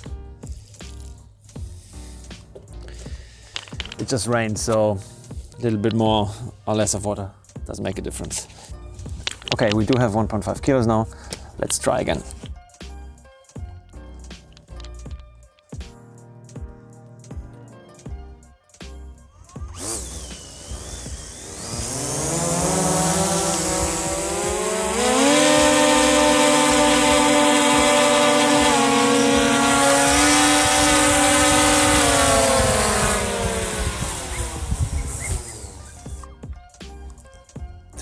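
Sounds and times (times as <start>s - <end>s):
drone motors whining: 19.5s - 36.3s.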